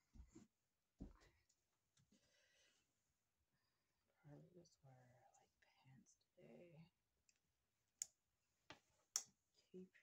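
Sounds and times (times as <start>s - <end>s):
faint whispered words: 4.2s - 7.0s.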